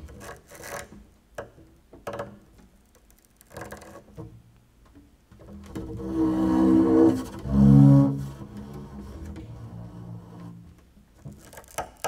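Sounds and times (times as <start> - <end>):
double bass scraping and rubbing: 5.6 - 11.7.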